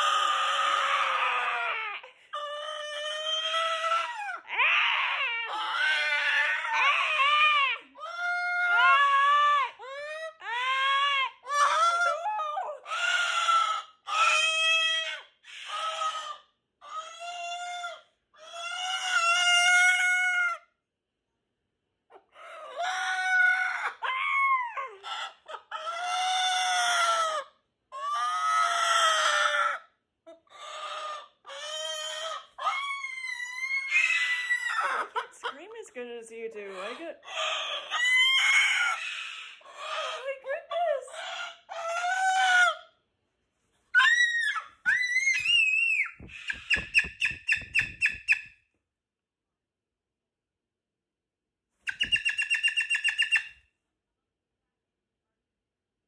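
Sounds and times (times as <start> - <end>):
cockatoo screaming: 0.0 - 20.7, 22.4 - 35.3, 36.8 - 42.9, 43.9 - 48.4.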